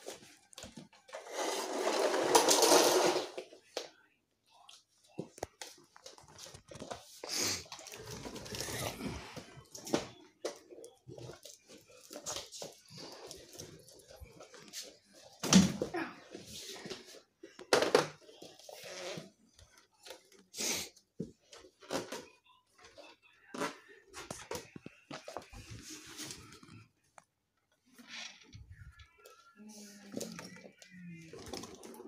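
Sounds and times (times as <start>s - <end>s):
rustling of toys being handled: 0.0s - 3.7s, 4.5s - 32.0s.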